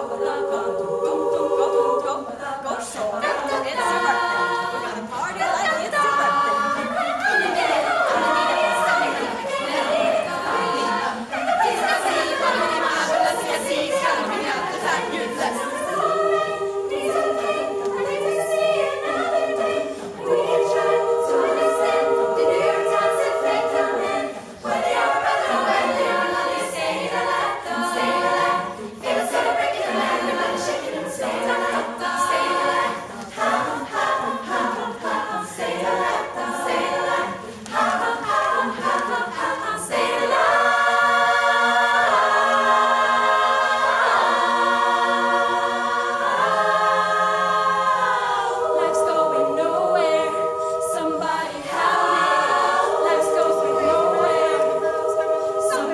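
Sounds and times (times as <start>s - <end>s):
women's choir singing a cappella: 0.0s - 55.9s.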